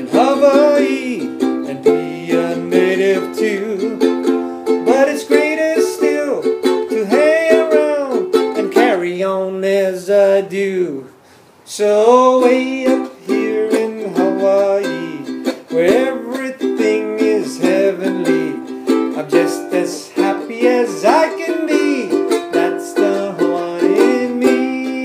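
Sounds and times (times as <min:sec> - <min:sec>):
ukulele strumming: 0:00.0 - 0:10.9, 0:11.9 - 0:25.0
man singing: 0:00.0 - 0:25.0.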